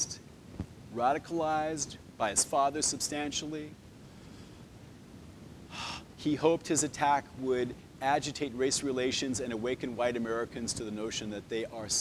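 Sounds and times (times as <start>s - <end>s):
man's intake of breath: 5.7s - 6.1s.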